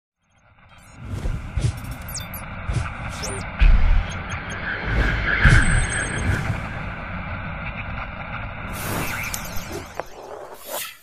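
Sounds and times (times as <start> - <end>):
rumbling whoosh: 0.8 - 10.5.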